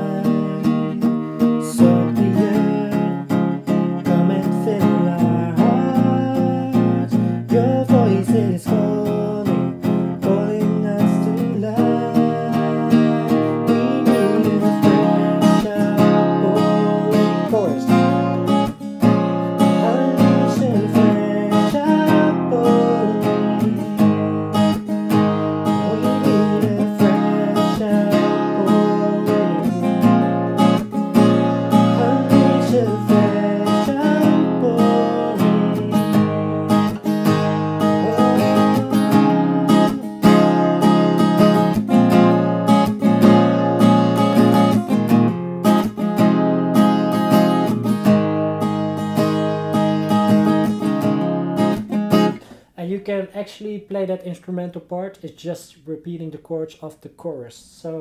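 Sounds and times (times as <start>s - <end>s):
acoustic guitar strumming chords: 0.0s - 52.8s.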